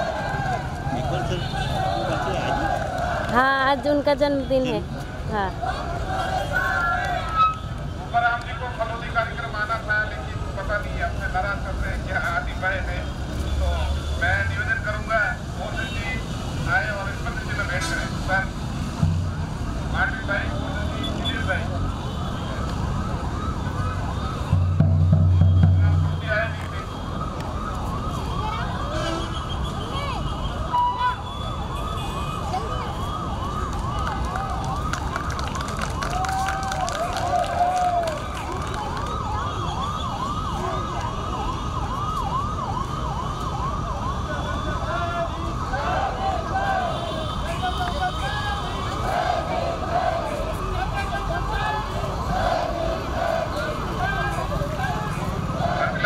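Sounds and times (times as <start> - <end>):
crowd voices: 0.0 - 56.0
siren wailing: 17.0 - 56.0.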